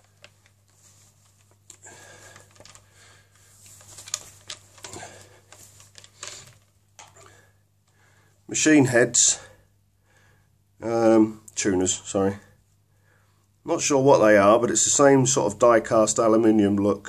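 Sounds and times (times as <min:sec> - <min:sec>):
cloth and wood rustling: 0:00.0 - 0:07.4
small clicks and knocks: 0:02.4 - 0:02.9, 0:03.7 - 0:07.3.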